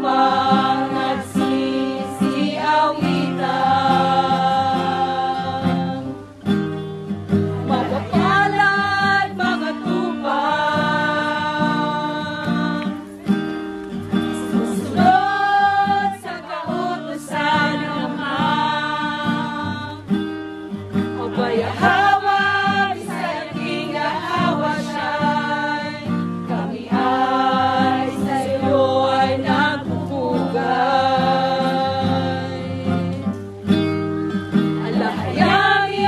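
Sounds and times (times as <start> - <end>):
person singing religious song: 0.0 - 6.2, 7.4 - 13.4, 14.1 - 20.3, 20.9 - 33.4, 34.7 - 36.0
acoustic guitar: 0.0 - 36.0.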